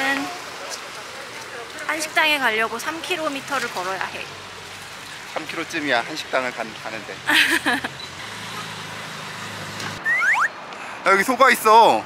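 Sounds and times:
low traffic hum: 0.0 - 12.0
rising whistle-like chirps: 10.0 - 10.6.

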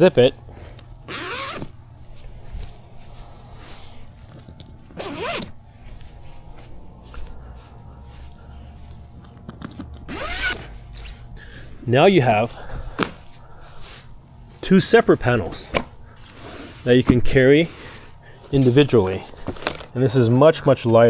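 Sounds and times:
zipper unzipping: 1.0 - 1.8, 4.9 - 5.6, 10.0 - 10.7.

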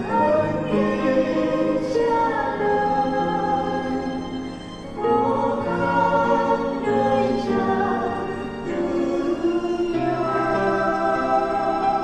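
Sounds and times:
church choir singing a hymn: 0.0 - 12.0.

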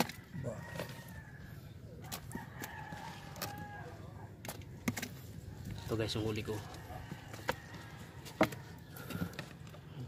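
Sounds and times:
rooster crowing: 0.0 - 4.3, 6.6 - 8.9.

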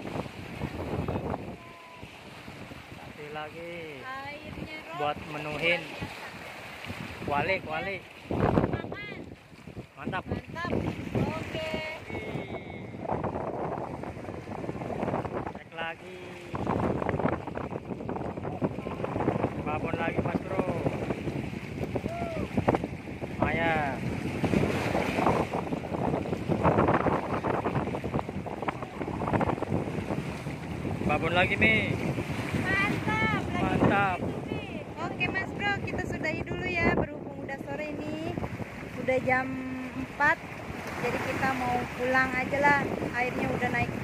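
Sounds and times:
waves washing against rocks: 0.0 - 44.0
wind buffeting microphone: 0.0 - 44.0.

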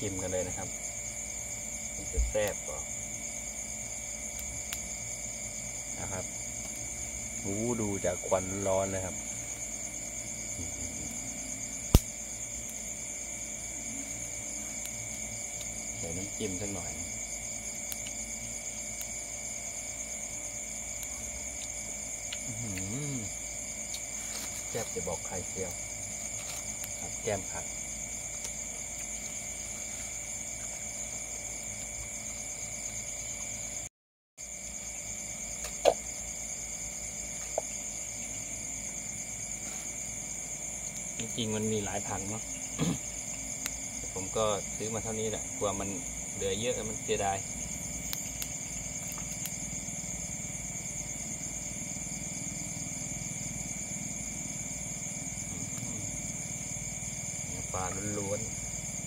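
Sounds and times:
crickets trilling: 0.0 - 59.0.

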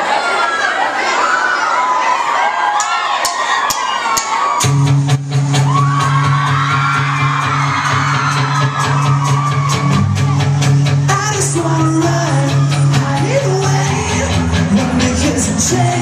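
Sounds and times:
crowd screaming and cheering: 0.0 - 16.0
rock band playing loud: 4.2 - 16.0
electric guitar: 4.6 - 16.0.

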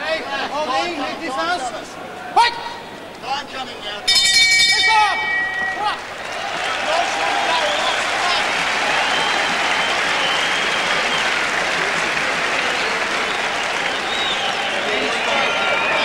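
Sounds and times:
crowd applauding and cheering: 4.2 - 16.0.

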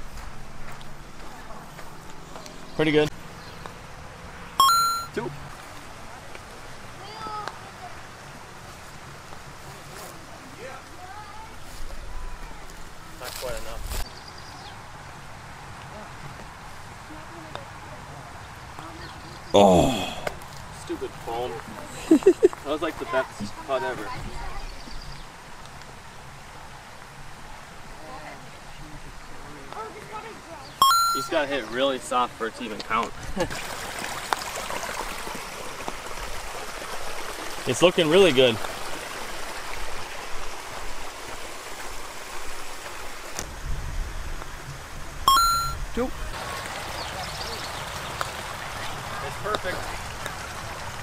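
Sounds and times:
outdoor background hiss: 0.0 - 51.0
electronic beep: 4.6 - 5.2, 30.8 - 31.5, 45.3 - 45.9.

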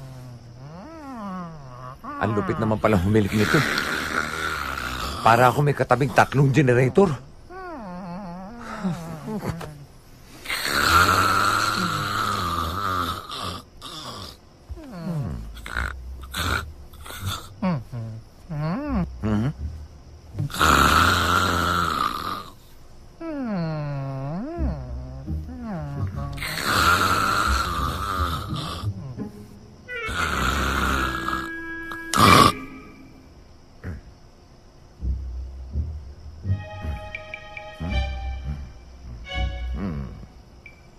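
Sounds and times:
comic snoring: 0.0 - 9.8, 10.4 - 22.6, 23.3 - 34.1, 35.1 - 40.4
short music cues: 29.9 - 33.5, 36.5 - 40.1.

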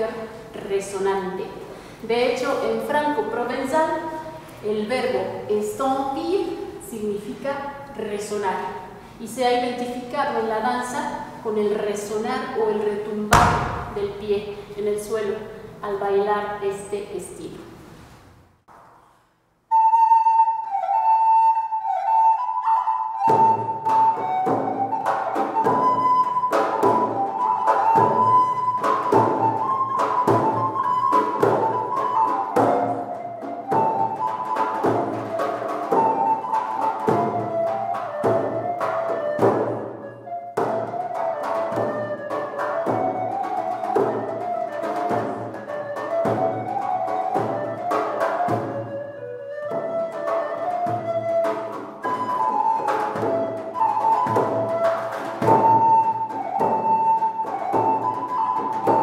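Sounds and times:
steady drum beat: 13.3 - 14.2
flute-like wind melody: 19.7 - 59.0.

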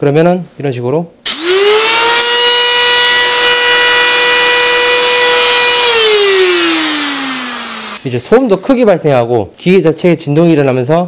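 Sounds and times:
man talking: 0.0 - 1.1, 8.0 - 11.0
die grinder whining and spinning down: 1.3 - 8.1.

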